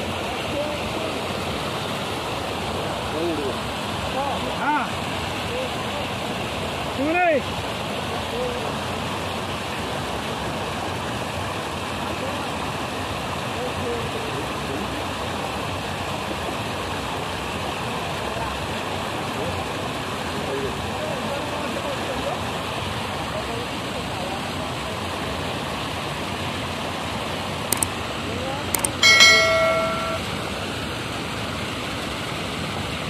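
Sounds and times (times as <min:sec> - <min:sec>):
water rushing through concrete channel: 0:00.0 - 0:33.0.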